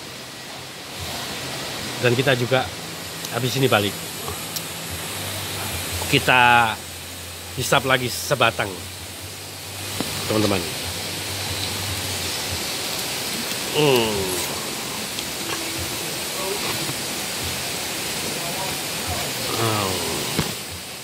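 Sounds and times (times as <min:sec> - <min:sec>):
steady rushing hiss: 0:00.0 - 0:21.0
brief voices: 0:13.7 - 0:15.7.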